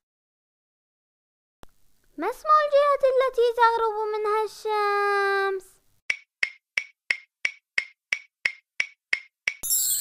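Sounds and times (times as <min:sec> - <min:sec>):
clock-like ticks: 0:06.1 - 0:09.6
bright shimmering chime: 0:09.6 - 0:10.0.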